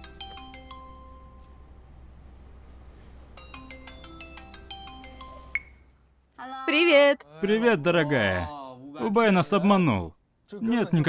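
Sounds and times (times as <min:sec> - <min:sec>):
mallet percussion music: 0:00.0 - 0:01.6, 0:03.4 - 0:05.9.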